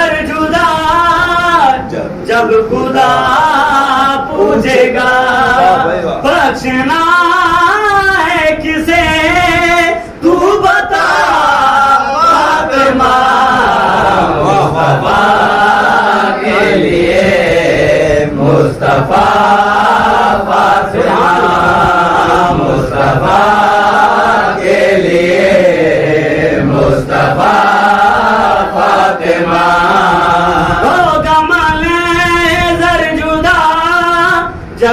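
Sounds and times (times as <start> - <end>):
men chanting: 0.0 - 34.9.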